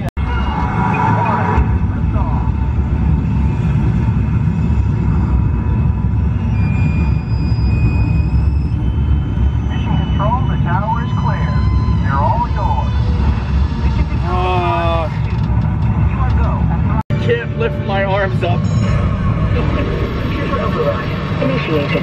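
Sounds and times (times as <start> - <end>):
voices: 9.6 - 15.5, 16.1 - 22.0.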